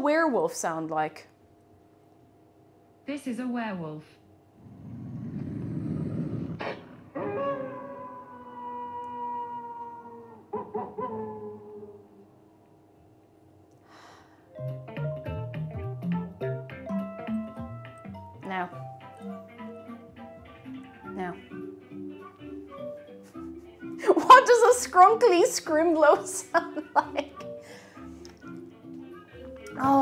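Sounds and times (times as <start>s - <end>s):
werewolf growl: 4.6s - 7.1s
long falling howl: 5.2s - 12.2s
music with plucked notes: 14.6s - 30.0s.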